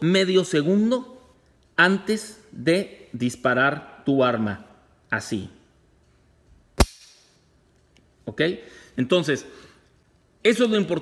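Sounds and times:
pistol dry-fire click: 0:06.8 - 0:07.4.

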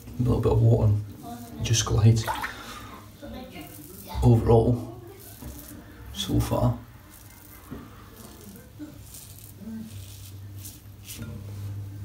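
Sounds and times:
razor scraping stubble: 0:03.4 - 0:11.8.

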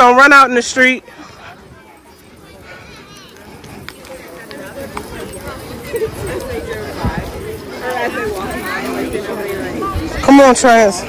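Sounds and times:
children and adults talking: 0:00.0 - 0:11.0
footsteps on pavement: 0:01.2 - 0:09.7.

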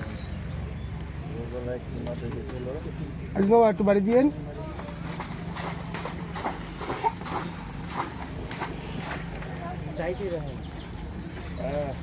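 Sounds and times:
steady low hum: 0:00.0 - 0:12.0
faint voices talking: 0:00.2 - 0:05.8.

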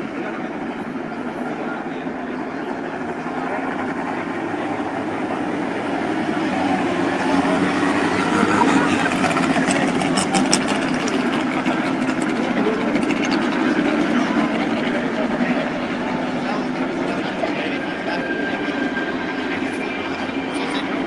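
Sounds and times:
racing car engines: 0:00.0 - 0:21.0.

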